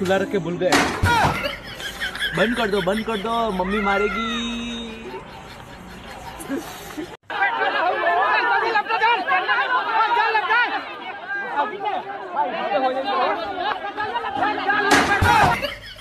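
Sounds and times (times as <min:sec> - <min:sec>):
high-pitched voices chattering: 0:01.2 - 0:07.8.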